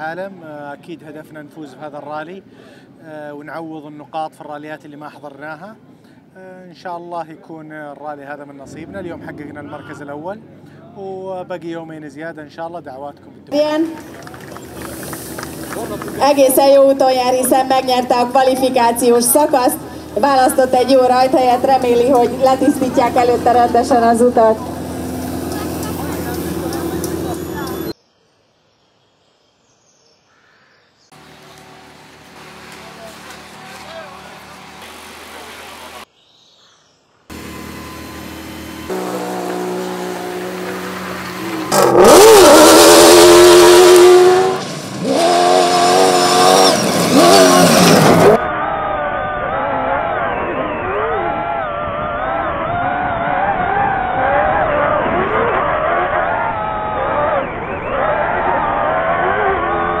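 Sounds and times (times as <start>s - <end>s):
truck engine revving hard: 13.9s - 28.0s, 37.3s - 60.0s.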